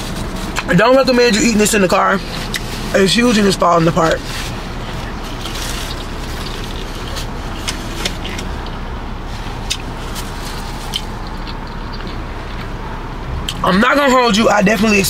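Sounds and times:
car cabin background noise: 0:00.0 - 0:15.0
person eating: 0:04.1 - 0:12.9.

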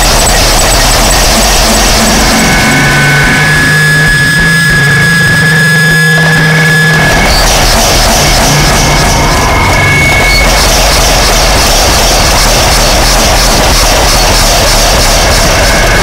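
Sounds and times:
distorted noise music: 0:00.0 - 0:16.0
steady held tones: 0:00.0 - 0:16.0.

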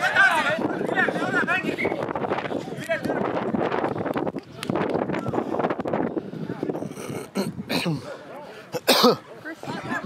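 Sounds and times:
wind buffeting microphone: 0:00.0 - 0:07.7.

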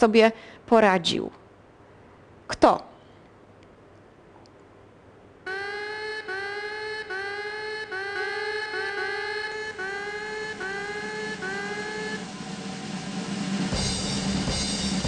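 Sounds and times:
rising electronic tone: 0:05.5 - 0:13.3.

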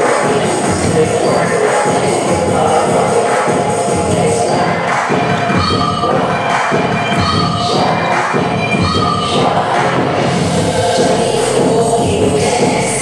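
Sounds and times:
loud dance music: 0:00.0 - 0:13.0
people shouting and cheering: 0:00.0 - 0:13.0.

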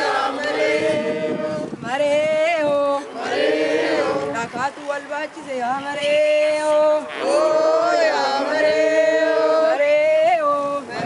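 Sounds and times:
group singing together: 0:00.0 - 0:04.6, 0:06.0 - 0:11.0.

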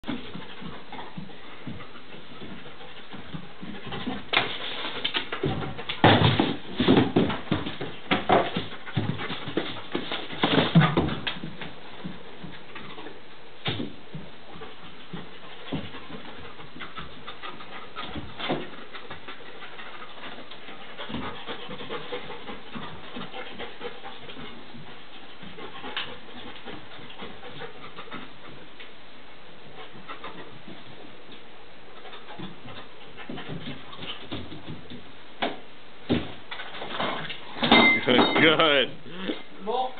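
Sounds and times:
dog panting: 0:00.1 - 0:13.2, 0:14.5 - 0:29.0, 0:29.6 - 0:34.9
sharp knocks and clatter: 0:02.4 - 0:28.2.

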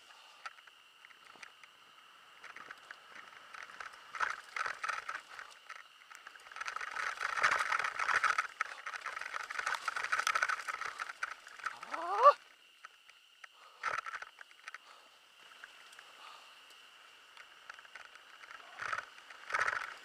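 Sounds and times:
bike tyres on dirt and stones: 0:00.0 - 0:20.0
bike clattering and rattling: 0:02.3 - 0:20.0.

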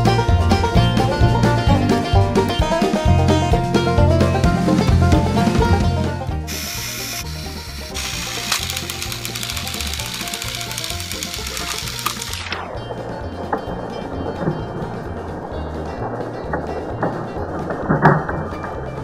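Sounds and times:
background music with bass line: 0:00.0 - 0:19.0
toy train motors whirring: 0:06.5 - 0:12.6.

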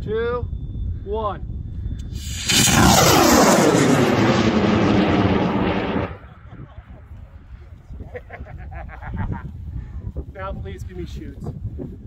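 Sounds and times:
rocket motor burning: 0:02.1 - 0:06.3.

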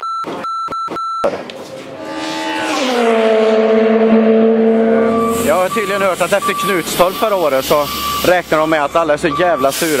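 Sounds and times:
race car engine passing: 0:01.4 - 0:08.2.

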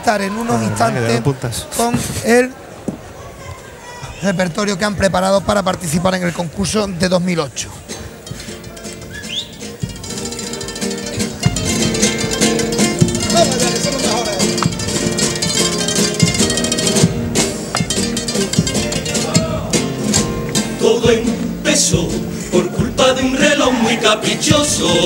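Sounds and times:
drum beats: 0:07.8 - 0:25.0
guitars strummed together: 0:07.9 - 0:25.0.

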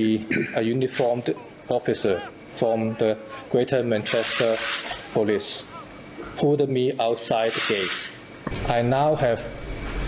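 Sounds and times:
man speaking: 0:00.0 - 0:09.6.

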